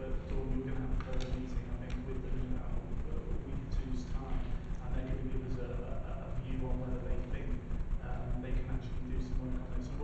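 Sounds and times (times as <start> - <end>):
man talking into a microphone: 0.0 - 10.0.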